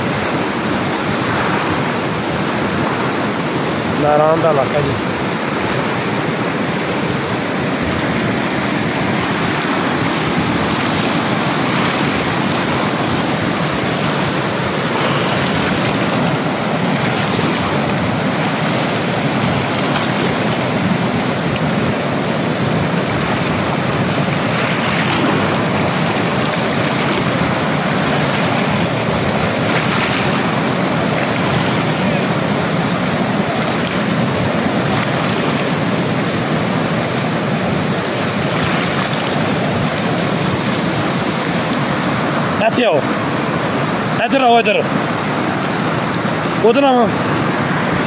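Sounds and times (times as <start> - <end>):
wind buffeting microphone: 0.0 - 42.3
river rapids rushing over boulders: 0.0 - 48.0.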